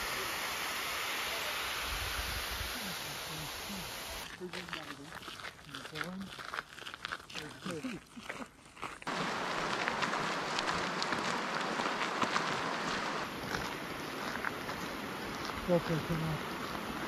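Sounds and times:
creek water flowing: 0:00.0 - 0:17.0
footsteps crunching on gravel: 0:04.2 - 0:17.0.

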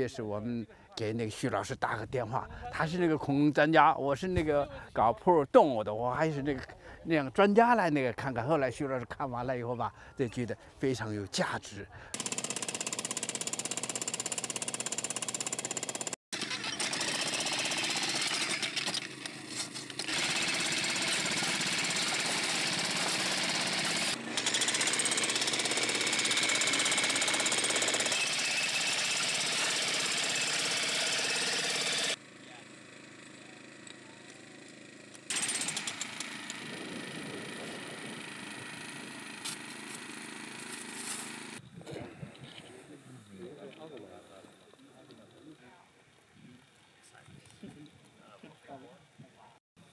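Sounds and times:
power hammer chiselling rock: 0:12.1 - 0:32.2, 0:35.3 - 0:36.6.

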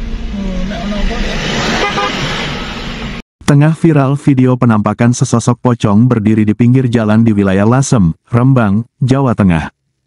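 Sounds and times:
car engine and road noise: 0:00.0 - 0:03.2
car horn toot: 0:01.8 - 0:02.3.

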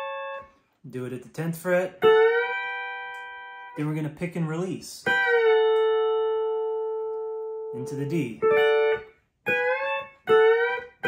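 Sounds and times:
pedal steel guitar chord: 0:00.0 - 0:00.5.

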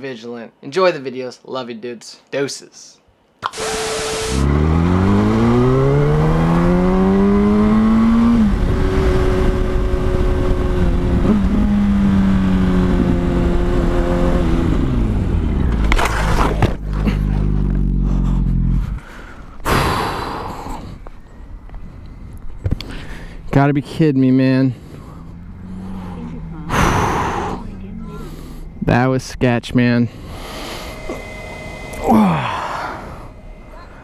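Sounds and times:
motorcycle engine revving: 0:03.5 - 0:19.1, 0:24.2 - 0:34.0.

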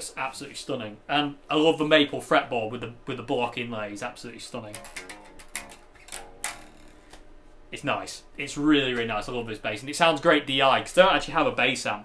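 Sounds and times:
electric bass plucked notes: 0:04.7 - 0:07.1.

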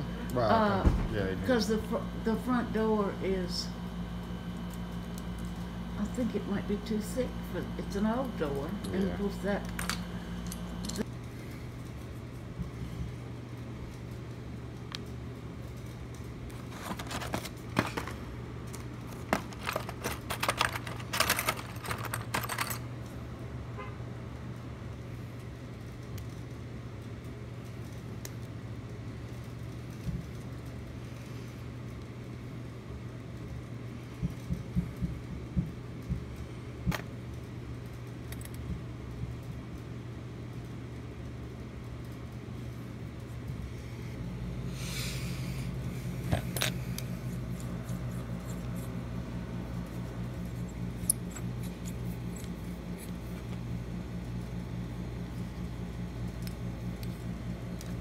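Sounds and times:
low hum: 0:00.0 - 0:23.9, 0:42.1 - 0:58.0
metal lock parts clicking: 0:09.6 - 0:11.1, 0:18.7 - 0:22.9, 0:46.3 - 0:48.9, 0:50.0 - 0:53.5.

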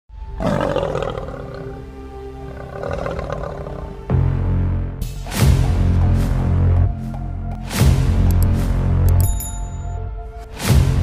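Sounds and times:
lion roaring: 0:00.3 - 0:04.1.

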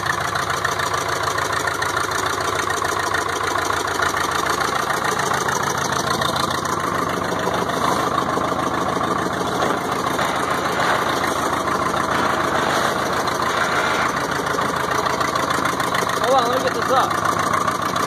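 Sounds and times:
bulldozer diesel engine idling: 0:00.0 - 0:18.0.

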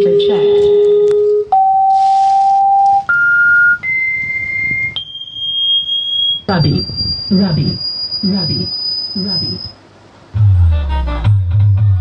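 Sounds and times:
test tones rising in pitch: 0:00.0 - 0:12.0.

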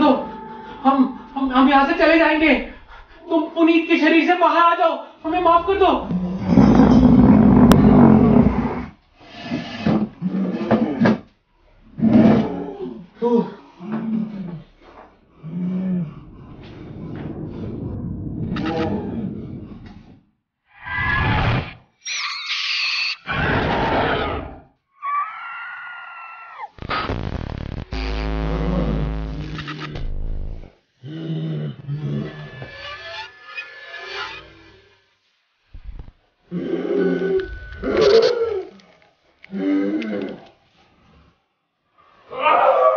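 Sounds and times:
high ringing tone: 0:00.0 - 0:02.8, 0:22.1 - 0:23.2, 0:37.4 - 0:38.4
guttural monster growling roar: 0:05.3 - 0:09.0, 0:15.5 - 0:20.2
scream-like wail: 0:22.4 - 0:26.8, 0:36.5 - 0:38.8, 0:42.3 - 0:42.9.

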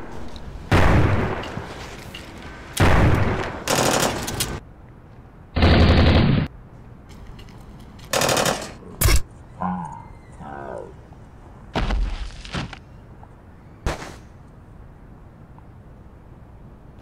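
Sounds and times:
automatic gunfire: 0:02.9 - 0:04.3, 0:08.1 - 0:08.8.

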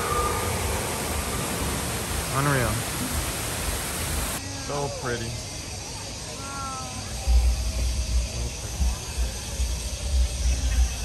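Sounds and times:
waterfall rushing: 0:00.0 - 0:04.4.

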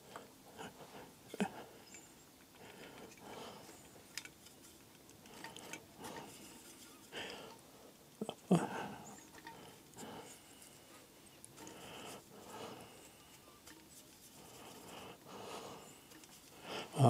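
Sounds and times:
rustling: 0:00.0 - 0:17.0.

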